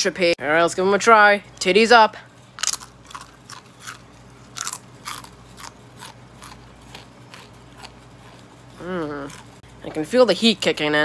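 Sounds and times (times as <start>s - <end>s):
chewing crunchy crisps: 2.5s - 10.0s.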